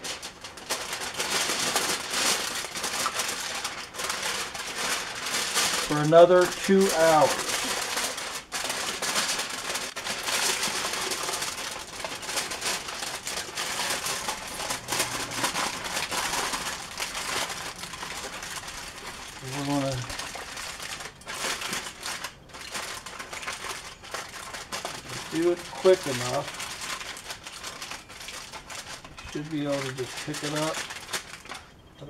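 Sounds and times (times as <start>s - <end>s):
aluminium foil crinkling: 0.0s - 32.0s.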